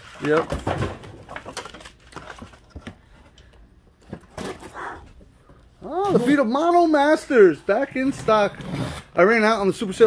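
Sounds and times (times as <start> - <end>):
paper and cardboard rustling: 0.0 - 3.4.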